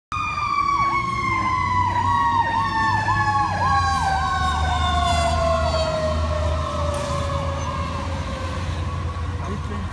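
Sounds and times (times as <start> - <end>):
fast cycling siren: 0.1 - 9.5
long descending siren: 0.1 - 9.8
truck engine rumble: 0.1 - 9.9.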